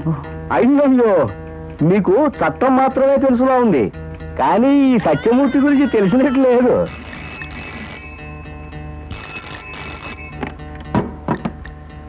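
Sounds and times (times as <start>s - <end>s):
telephone bell ringing: 6.5s - 10.6s.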